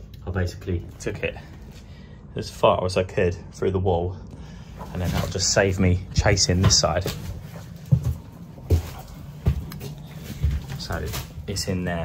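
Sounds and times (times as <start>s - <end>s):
footsteps thumping: 6.2s - 11.4s.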